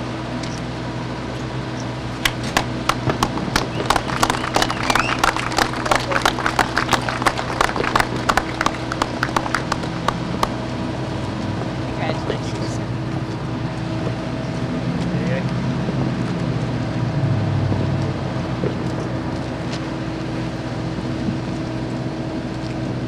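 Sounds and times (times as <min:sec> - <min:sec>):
low machine hum: 0:00.0 - 0:23.0
people clapping: 0:02.2 - 0:10.6
faint voices: 0:03.7 - 0:10.5.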